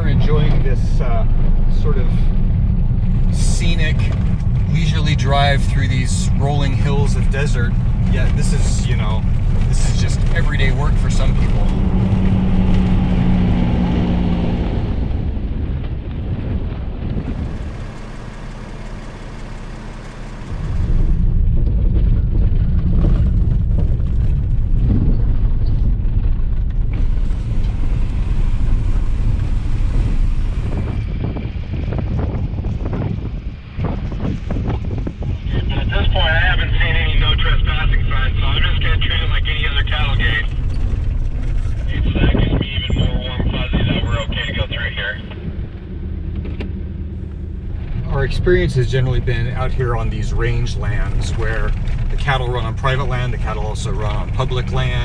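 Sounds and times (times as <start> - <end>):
vehicles driving on gravel: 0.0 - 55.0.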